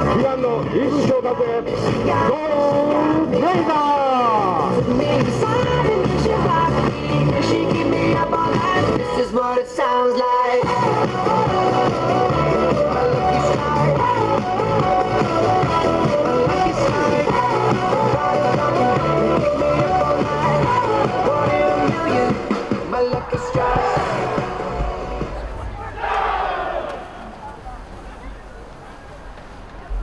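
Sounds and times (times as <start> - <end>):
pop-rock song with vocals: 0.0 - 25.3
bass line: 10.6 - 26.6.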